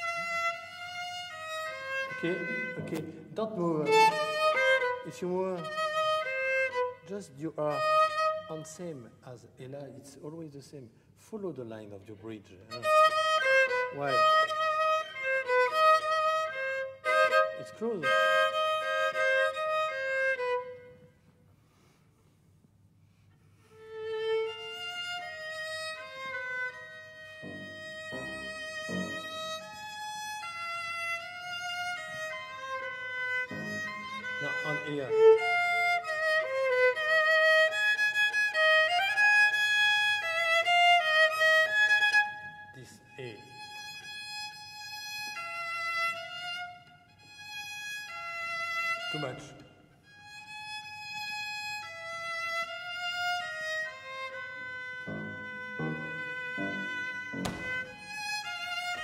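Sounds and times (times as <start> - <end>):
violas playing slow melody: 0.0 - 8.9, 12.7 - 21.2, 23.1 - 59.0.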